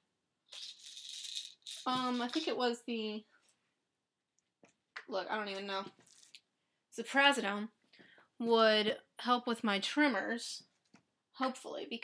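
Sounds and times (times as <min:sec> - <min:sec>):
pills rattling in plastic bottle: 0:00.5 - 0:02.5.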